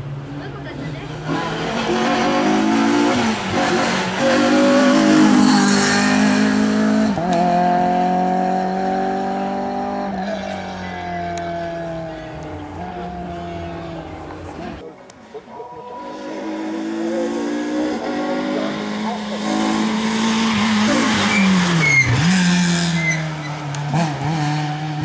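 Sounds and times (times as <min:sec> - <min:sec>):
rally car engine accelerating: 0:00.2 - 0:14.8, 0:15.8 - 0:25.0.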